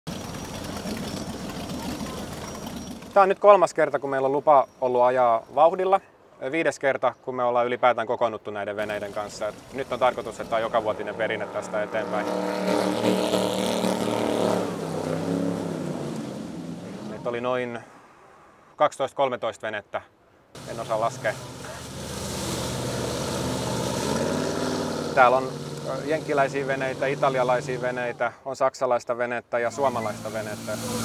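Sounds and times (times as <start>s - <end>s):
motorboat engine humming: 0.1s - 3.6s, 8.8s - 17.2s, 20.6s - 28.3s, 29.7s - 31.0s.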